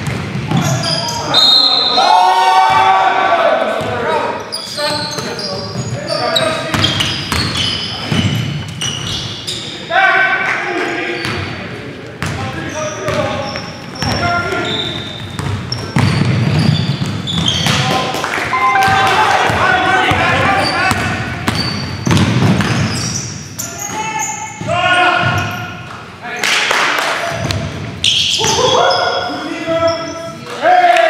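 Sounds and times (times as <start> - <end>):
sneaker squeaks: 0.0 - 2.0, 4.3 - 9.9, 11.1 - 11.6, 12.2 - 25.9, 27.3 - 30.4
players calling out: 12.3 - 25.9, 27.3 - 31.0
basketball bouncing on wooden floor: 14.0 - 18.0, 20.9 - 23.1.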